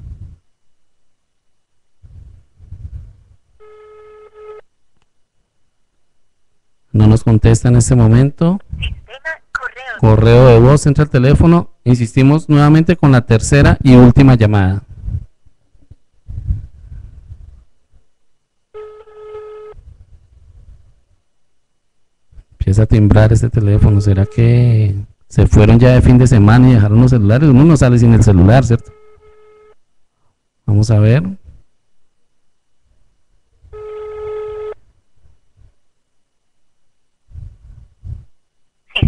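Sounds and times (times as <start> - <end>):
faint low rumble: 0.0 - 3.6, 14.8 - 18.7, 34.8 - 39.0
telephone ringback tone: 3.6 - 4.6, 18.8 - 19.8, 33.8 - 34.8
phone ringback beep: 18.8 - 19.8.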